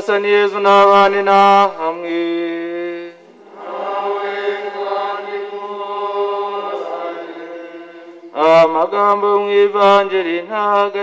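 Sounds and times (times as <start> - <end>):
congregation chanting in unison: 0.0 - 11.0.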